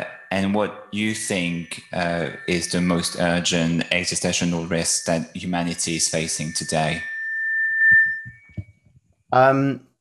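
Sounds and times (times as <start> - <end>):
high-pitched steady tone: 0.0 - 8.8.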